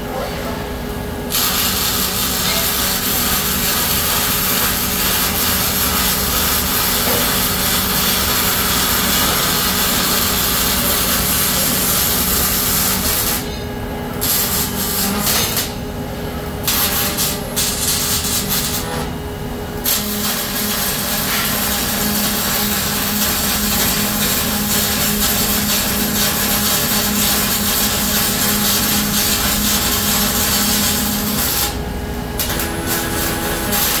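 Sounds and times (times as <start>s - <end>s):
welding arc crackling and hissing: 1.2s - 13.6s, 14.2s - 15.8s, 16.6s - 19.1s, 19.8s - 34.0s.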